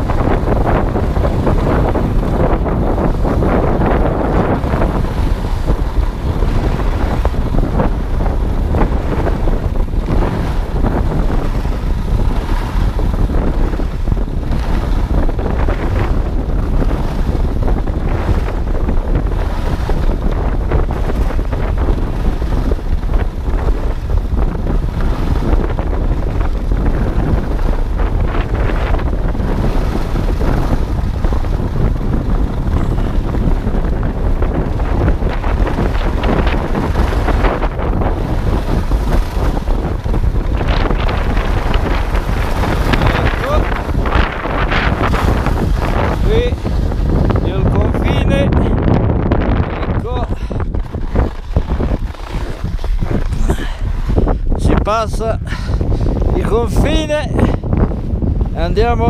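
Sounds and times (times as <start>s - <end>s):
wind buffeting microphone: 0.0s - 59.0s
skis hissing and scraping on snow: 41.0s - 47.2s, 50.2s - 54.4s.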